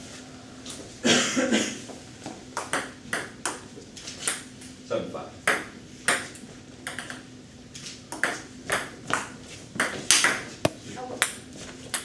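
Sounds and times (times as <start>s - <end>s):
table tennis ball clicking: 6.8s - 7.2s.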